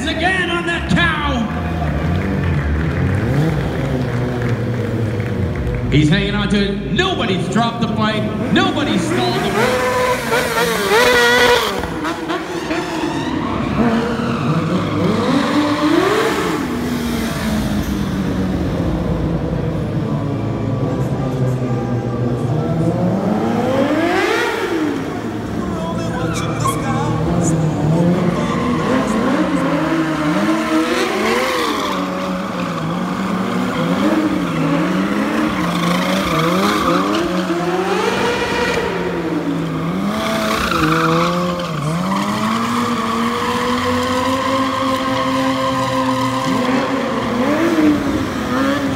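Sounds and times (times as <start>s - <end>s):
motorcycle engine revving: 1.6s - 6.0s, 8.2s - 48.9s.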